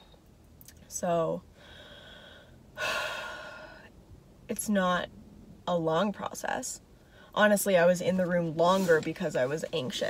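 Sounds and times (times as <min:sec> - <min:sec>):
woman breathing: 0:01.5 - 0:04.0.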